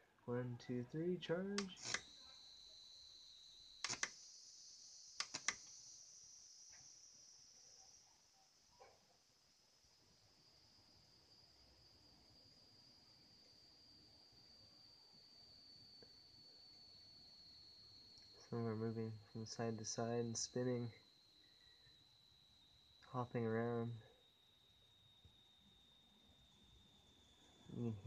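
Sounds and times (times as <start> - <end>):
high-pitched electrical whine: 0.0 - 28.0
sharp clicks: 1.6 - 2.1, 3.8 - 4.2, 5.2 - 5.7.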